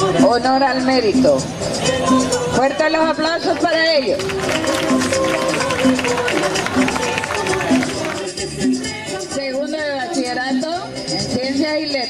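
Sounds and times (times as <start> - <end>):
drums beating steadily: 3.4 - 11.6
marching band playing: 3.5 - 9.0.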